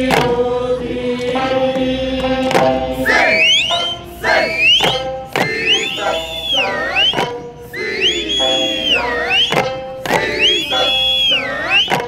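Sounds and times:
held singing tones: 0.0 - 12.0
drum strikes: 1.4 - 7.4, 8.2 - 10.9
shrill finger whistles: 3.0 - 12.0.

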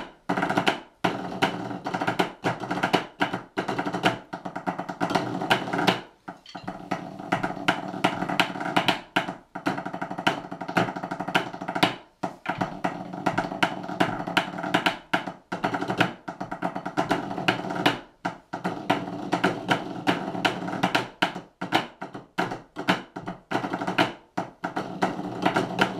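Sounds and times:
drumsticks on practice pads: 0.0 - 18.0.

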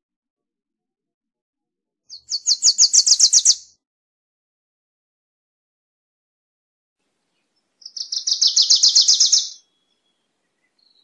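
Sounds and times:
warbler singing high chips: 2.1 - 3.7, 7.3 - 11.0.

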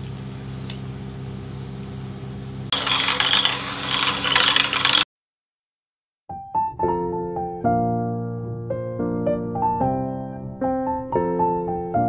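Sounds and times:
electric hand beater whirring in bowl: 2.7 - 5.1.

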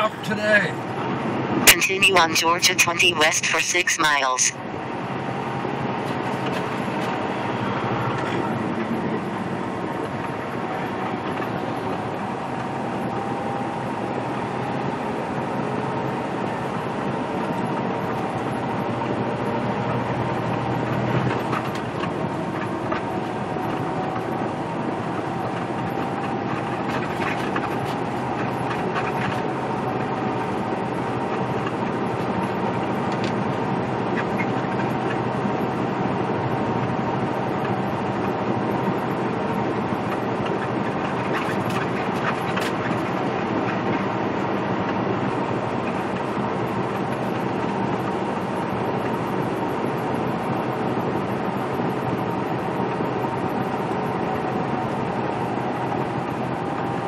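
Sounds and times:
engine and road noise drone: 0.0 - 57.0.

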